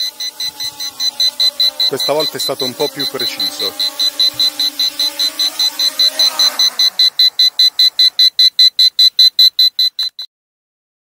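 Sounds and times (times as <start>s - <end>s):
drone motors humming: 0.0s - 8.5s
rapid high electronic beeping: 0.0s - 10.3s.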